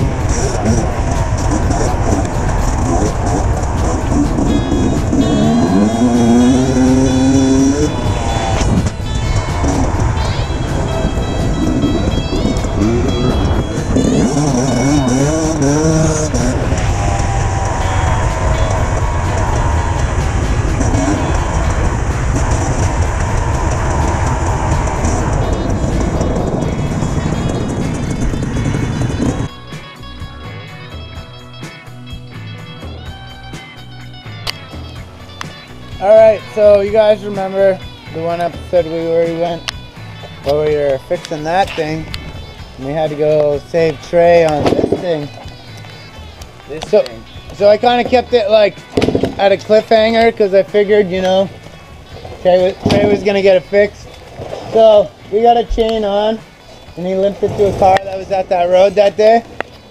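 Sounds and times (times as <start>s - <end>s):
dirt bike engine revving: 0.0s - 29.5s
music: 0.0s - 59.9s.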